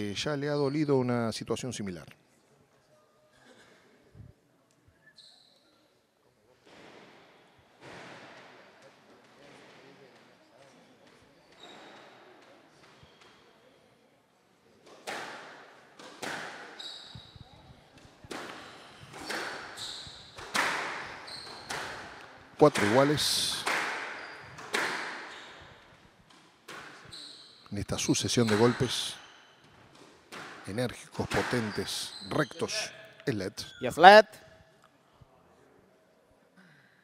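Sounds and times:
low murmur of voices: 2.2 - 19.8
shoes squeaking on wooden floor: 11.4 - 12.2, 16.6 - 34.2
racket striking squash ball: 15.0 - 16.8, 18.3 - 25.6, 26.3 - 27.1.

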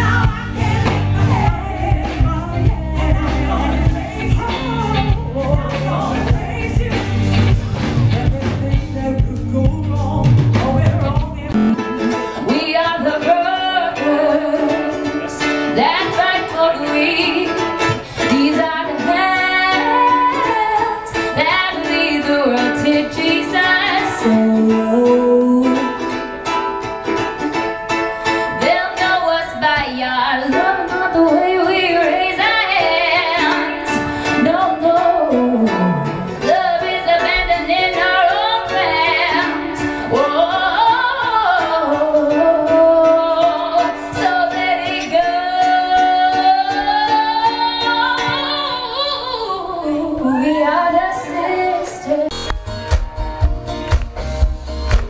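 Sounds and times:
woman singing: 0.0 - 26.6, 28.2 - 52.5
ukulele strumming: 0.0 - 55.0.

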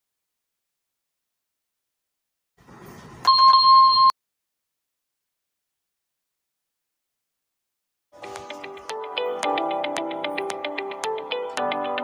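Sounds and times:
electronic bell ding: 3.3 - 4.2.

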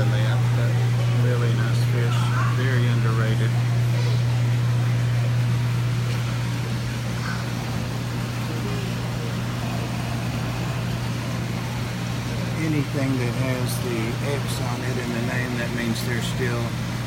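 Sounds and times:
faint indistinct voices: 0.0 - 10.9
low machinery hum: 0.0 - 17.0.

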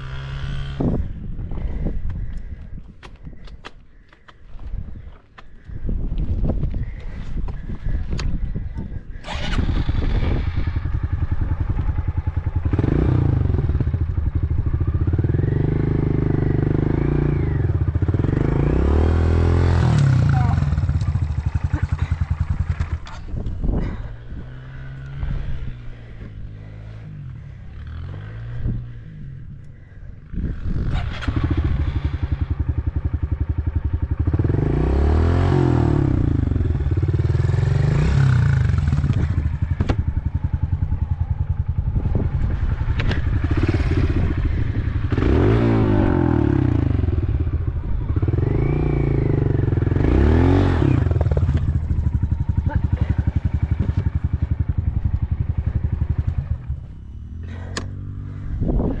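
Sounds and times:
motorbike engine revving: 8.6 - 59.0.

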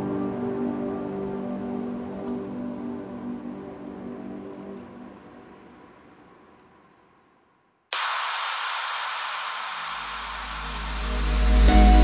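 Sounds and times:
synthesized white-noise hiss: 0.0 - 12.0
deep bass note: 9.9 - 12.0.

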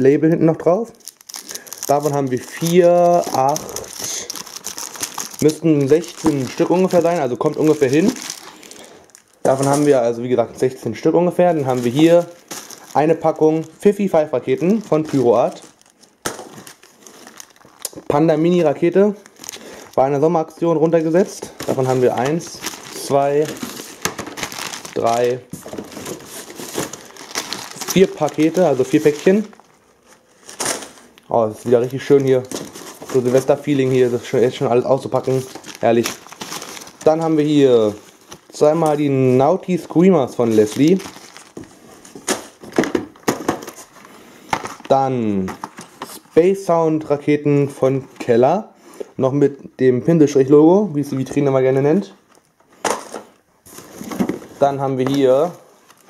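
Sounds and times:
plastic packaging crinkling: 0.9 - 46.4, 52.3 - 56.0.

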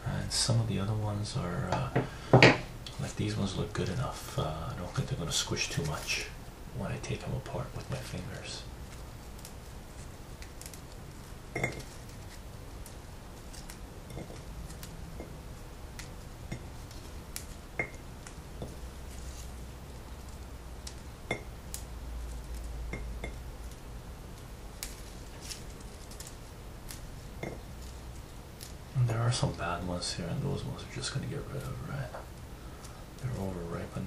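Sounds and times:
leafy stems rustling: 3.0 - 34.0
berries clicking into glass bowl: 26.9 - 27.6.

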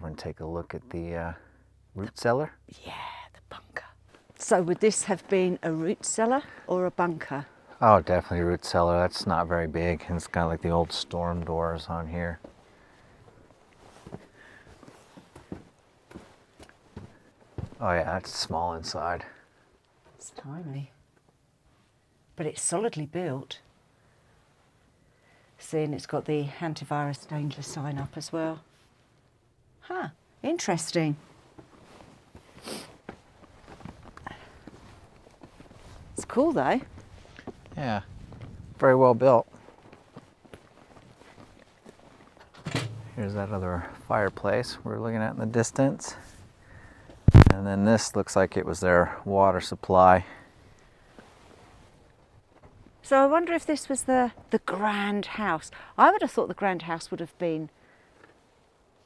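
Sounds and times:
quiet outdoor background noise: 0.0 - 59.0
light footsteps: 10.0 - 18.1, 31.2 - 44.8.

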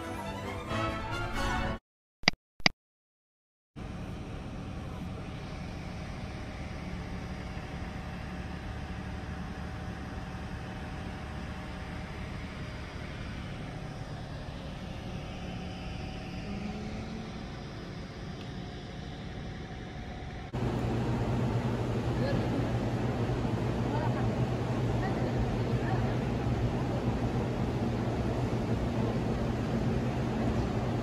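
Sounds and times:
faint steady whine: 3.8 - 31.0.

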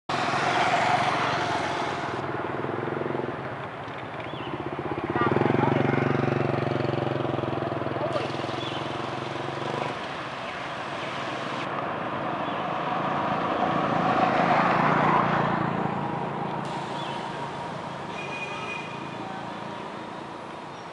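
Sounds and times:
engine running steadily: 0.1 - 11.8, 15.8 - 20.9
motorcycle passing: 0.1 - 20.8.

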